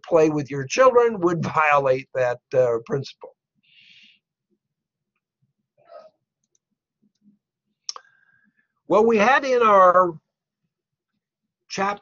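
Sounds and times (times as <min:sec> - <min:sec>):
man speaking: 0:00.0 - 0:03.4, 0:08.9 - 0:10.3, 0:11.7 - 0:12.0.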